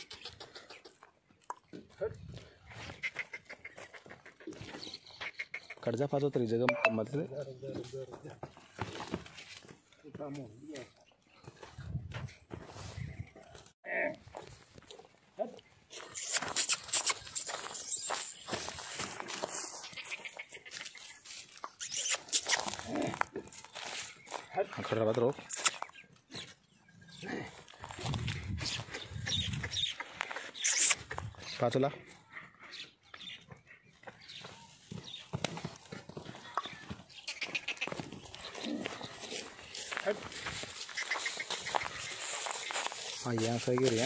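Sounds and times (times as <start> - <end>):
footsteps on dry stubble: 7.6 - 26.6, 27.3 - 44.0
goat hooves crunching on stubble: 16.0 - 21.9, 22.5 - 26.6, 33.2 - 44.0
goat hoof steps on dirt: 33.9 - 44.0.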